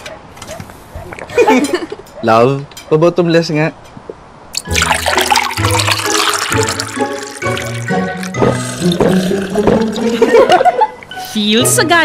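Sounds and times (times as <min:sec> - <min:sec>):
liquid pouring into glasses of ice: 0:04.6 - 0:10.4
music: 0:04.6 - 0:12.0.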